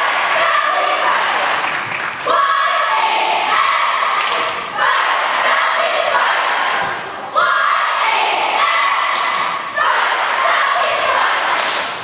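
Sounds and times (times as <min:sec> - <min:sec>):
cheerleaders shouting in unison: 0:00.0 - 0:12.0.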